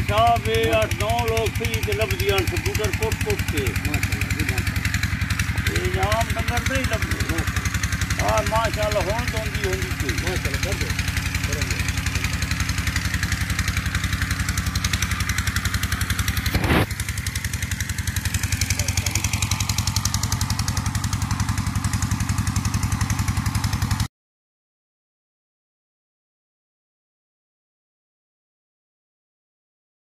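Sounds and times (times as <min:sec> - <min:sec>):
engine idling: 0:00.0 - 0:24.1.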